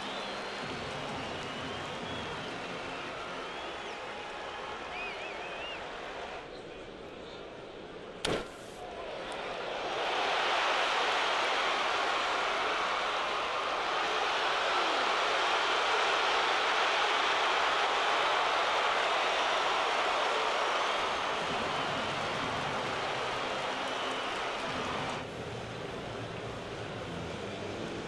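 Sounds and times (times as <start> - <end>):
stadium crowd cheering: 0.0 - 28.0.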